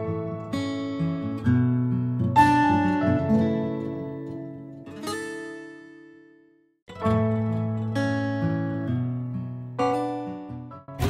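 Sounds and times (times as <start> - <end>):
plucked string music: 6.9 - 11.0.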